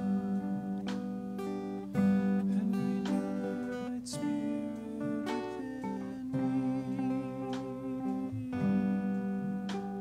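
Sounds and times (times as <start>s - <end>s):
acoustic guitar strummed: 0.0s - 10.0s.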